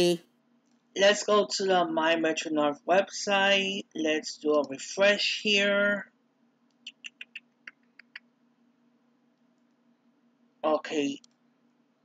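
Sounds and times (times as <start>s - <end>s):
faint steady low hum: 0.0s - 12.0s
keyboard or mouse clicks: 6.9s - 8.2s.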